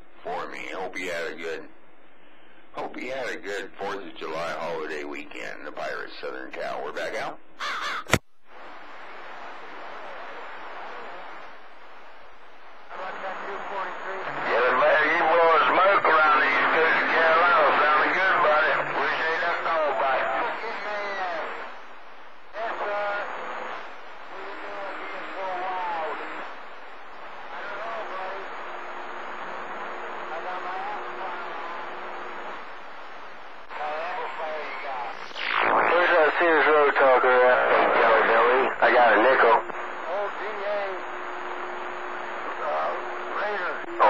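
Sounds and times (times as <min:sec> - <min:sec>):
radio static hiss: 0:00.0 - 0:07.4, 0:08.0 - 0:44.0
garbled radio voices: 0:12.9 - 0:21.8, 0:22.6 - 0:32.8, 0:33.7 - 0:44.0.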